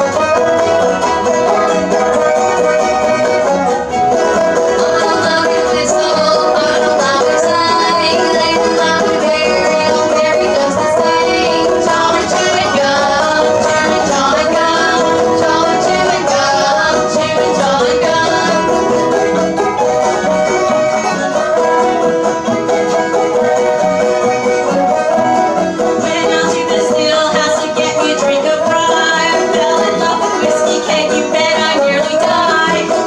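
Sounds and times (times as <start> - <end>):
plucked banjo notes: 0.0 - 33.0
string band playing: 0.0 - 33.0.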